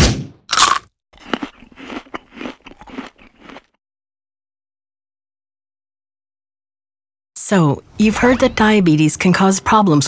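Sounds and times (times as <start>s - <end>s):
cartoon crunchy munching: 0.5s - 3.8s.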